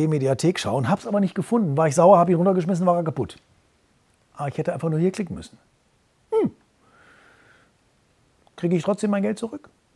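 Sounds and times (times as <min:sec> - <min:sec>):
man saying hm: 0:06.3 - 0:06.6
breathy exhale hiss: 0:06.8 - 0:07.8.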